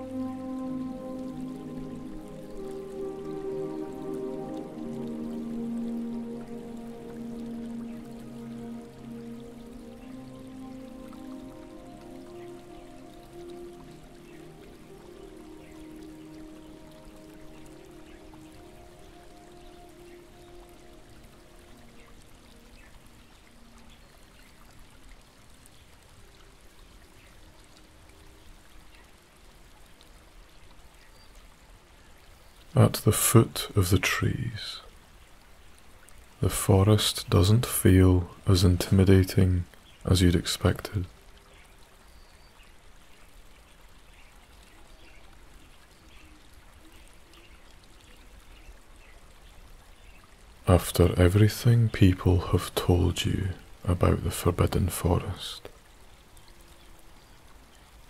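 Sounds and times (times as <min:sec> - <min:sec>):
small stream trickling: 0:00.0 - 0:58.0
soft ambient music: 0:00.0 - 0:58.0.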